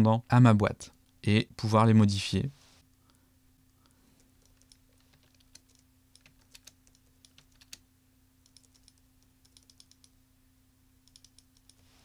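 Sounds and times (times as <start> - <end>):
low electrical hum: 0.0 - 12.0
computer keyboard typing: 4.2 - 7.8, 8.5 - 10.2, 11.0 - 11.8.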